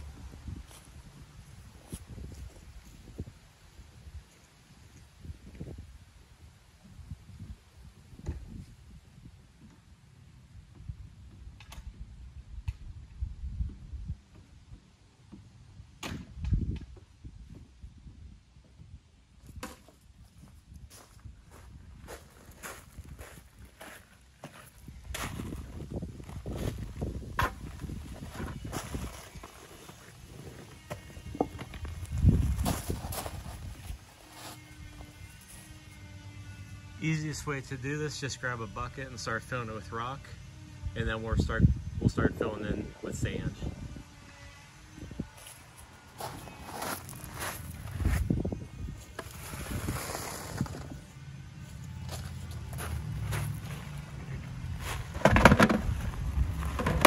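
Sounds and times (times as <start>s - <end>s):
footsteps on gravel: 20.9s - 35.9s, 45.4s - 57.0s
wheelbarrow knocking and scraping: 54.8s - 57.0s
rocks dropped into plastic bucket: 55.1s - 56.0s, 56.6s - 57.0s.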